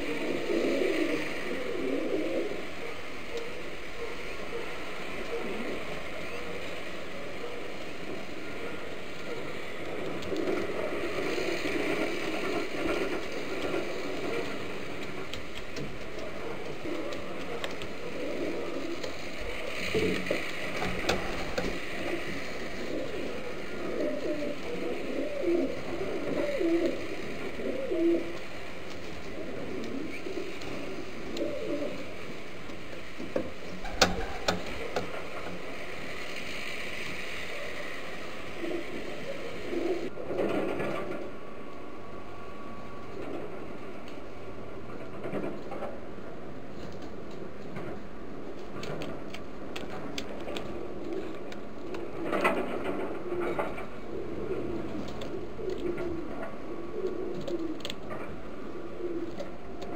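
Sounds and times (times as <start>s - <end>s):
pigeon cooing: 0.0s - 35.8s, 37.4s - 41.4s, 49.8s - 59.9s
steady hiss: 0.0s - 59.9s.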